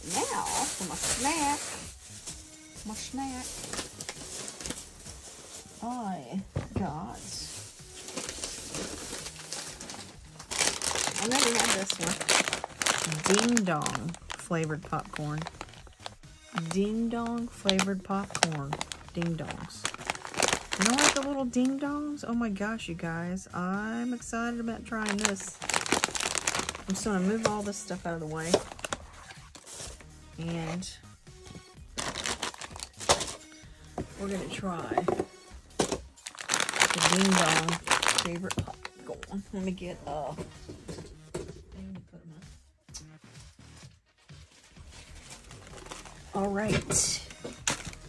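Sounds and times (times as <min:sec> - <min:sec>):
plastic snack bag crinkling: 0:03.3 - 0:05.8, 0:07.2 - 0:21.8, 0:24.8 - 0:30.5, 0:31.9 - 0:33.6, 0:35.8 - 0:39.4, 0:44.6 - 0:46.6, 0:47.3 - 0:48.0.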